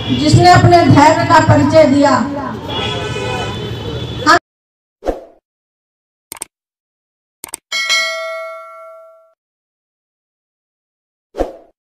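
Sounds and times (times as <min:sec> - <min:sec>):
bright bell ding: 0:07.7 - 0:09.4.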